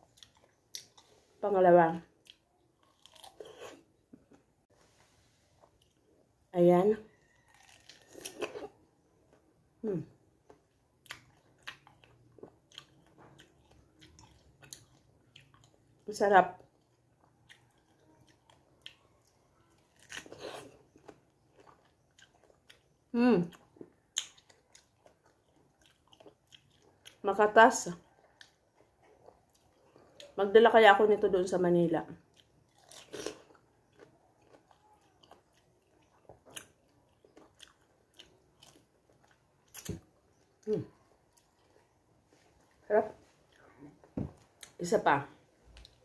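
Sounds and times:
wet chewing: 0.0 - 1.3, 2.2 - 4.5, 7.1 - 9.4, 10.4 - 16.0, 16.6 - 27.2, 32.2 - 44.8.

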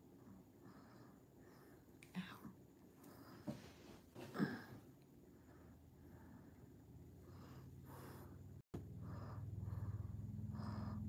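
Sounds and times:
faint whispering: 2.0 - 2.6.

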